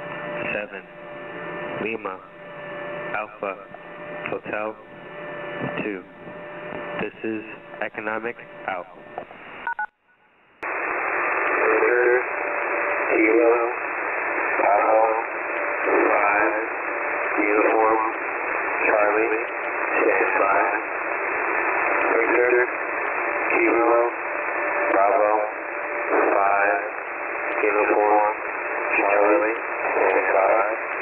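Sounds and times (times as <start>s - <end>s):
radio static hiss: 0.0s - 9.7s, 10.6s - 31.0s
man speaking over radio: 0.4s - 1.0s, 1.7s - 2.4s, 3.1s - 5.0s, 5.6s - 9.2s, 11.5s - 12.3s, 13.0s - 13.8s, 14.5s - 21.0s, 21.8s - 22.8s, 23.5s - 24.2s, 24.8s - 31.0s.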